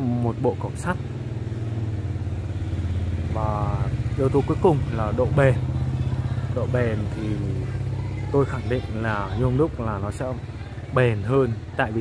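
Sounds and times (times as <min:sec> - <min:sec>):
small engine idling: 0:00.0 - 0:12.0.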